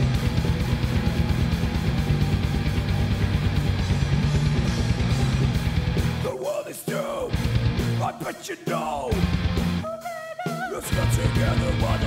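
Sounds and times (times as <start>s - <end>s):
electric guitar: 0.0s - 6.3s, 7.2s - 8.1s, 9.1s - 12.0s
bass guitar: 0.0s - 6.4s, 7.0s - 8.2s, 8.9s - 9.9s, 10.8s - 12.0s
fast drum-kit beat: 0.0s - 12.0s.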